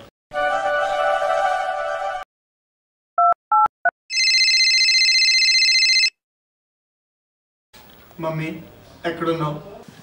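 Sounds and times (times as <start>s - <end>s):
telephone ringing: 3.2s - 6.2s.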